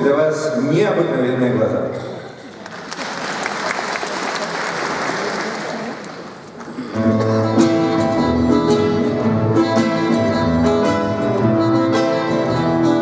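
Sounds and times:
audience applauding: 2.4s - 6.9s
acoustic guitar and band playing: 6.6s - 13.0s.

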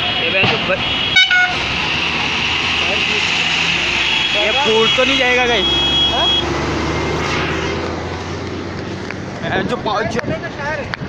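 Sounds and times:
road noise: 0.0s - 11.0s
vehicle engine rumble: 0.0s - 11.0s.

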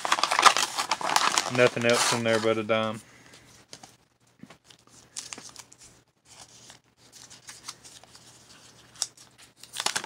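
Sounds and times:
paper and tape crinkling: 0.0s - 3.0s, 4.6s - 10.0s.

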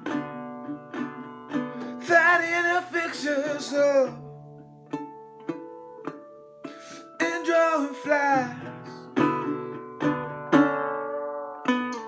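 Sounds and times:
resonator guitar plucked notes: 0.0s - 12.0s.

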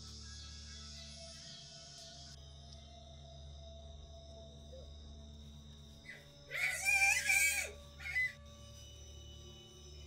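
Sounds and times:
low ambient music drone: 0.0s - 10.0s
high-pitched human scream: 6.5s - 8.4s.

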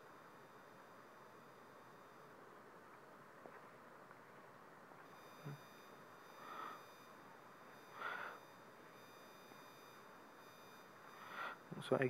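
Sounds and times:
high-pitched electronic tones: 5.1s - 12.0s.

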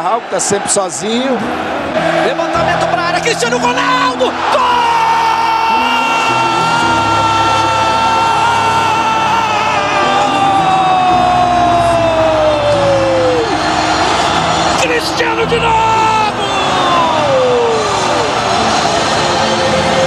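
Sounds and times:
background music: 0.0s - 20.0s
commentator shouting goal: 2.2s - 5.0s, 14.8s - 18.2s.

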